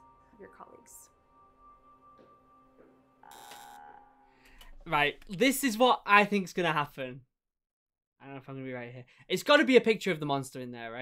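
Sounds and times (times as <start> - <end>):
faint sustained music tones: 0.0 - 4.6
short electronic buzz: 3.2 - 4.4.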